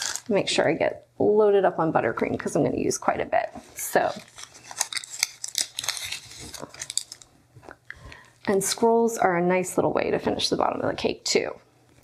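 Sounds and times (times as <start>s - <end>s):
hands rustling supplies: 3.8s - 8.8s.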